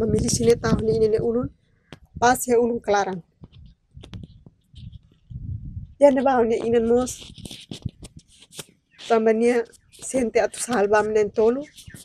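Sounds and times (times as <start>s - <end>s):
woman speaking: 0.0s - 1.5s, 2.2s - 3.3s, 6.0s - 7.3s, 9.1s - 11.7s.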